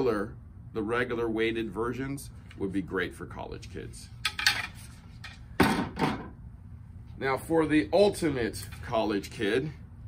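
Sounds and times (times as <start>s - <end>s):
racket frames knocking on hard surface: 5.6s - 6.3s.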